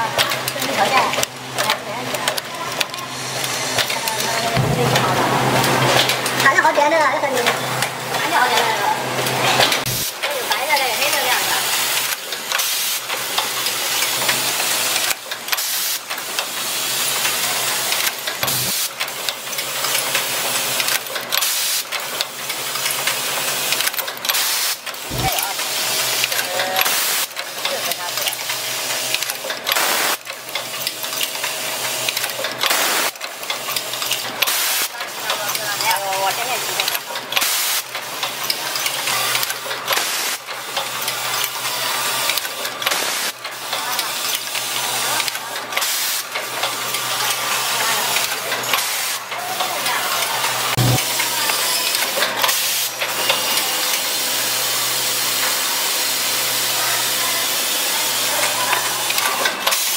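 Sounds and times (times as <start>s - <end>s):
machine mechanical clatter: 0.0s - 59.9s.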